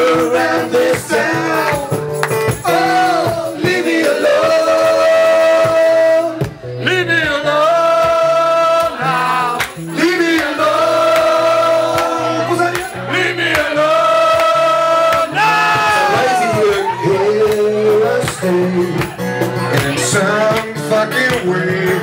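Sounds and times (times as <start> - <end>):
men singing held notes: 0.0 - 1.9, 2.6 - 19.0
acoustic guitars: 0.0 - 22.0.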